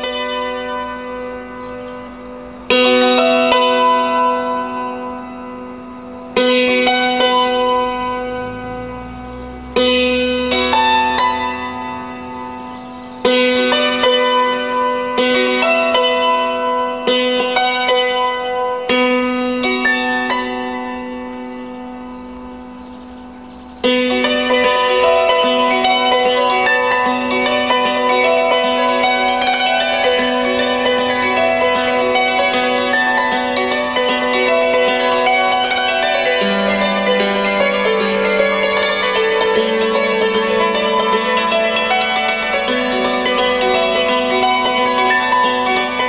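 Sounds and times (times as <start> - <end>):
hammered dulcimer: 0.0 - 46.0.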